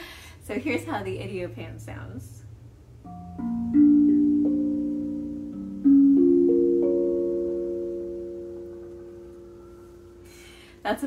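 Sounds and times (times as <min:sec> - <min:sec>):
steel tongue drum notes: 0:03.0 - 0:11.0.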